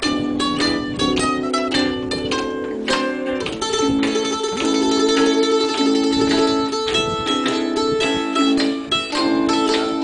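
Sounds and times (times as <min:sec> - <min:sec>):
picked mandolin notes: 0:00.0 - 0:10.0.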